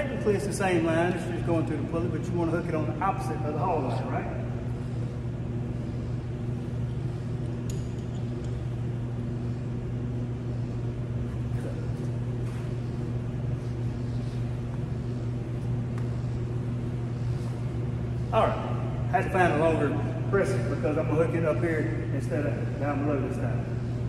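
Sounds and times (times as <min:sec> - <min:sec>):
machinery humming: 0:00.0 - 0:24.0.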